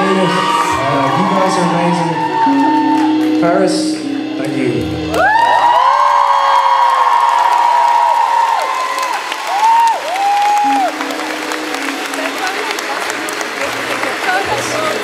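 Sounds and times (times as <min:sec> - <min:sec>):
high whoops: 0:00.0 - 0:03.3, 0:05.1 - 0:11.2
audience applauding and cheering: 0:00.0 - 0:15.0.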